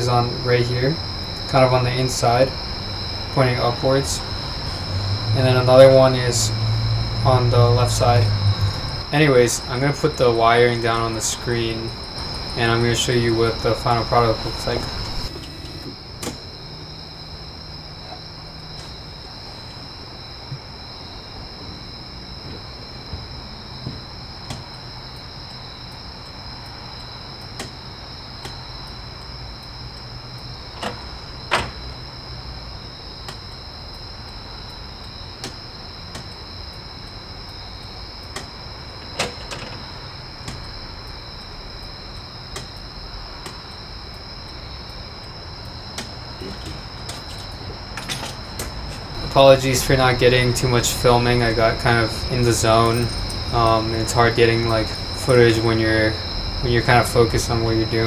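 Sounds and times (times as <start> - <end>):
crickets chirping: 0.0 - 58.0
low steady hum: 0.0 - 58.0
irregular clicks and knocks: 30.7 - 31.8, 35.4 - 36.4, 38.2 - 40.7, 42.5 - 43.7, 46.0 - 49.2.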